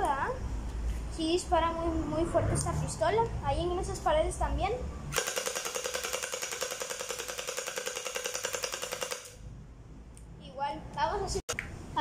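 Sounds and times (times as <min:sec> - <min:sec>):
toy rifle firing full auto: 0:05.1 - 0:09.4.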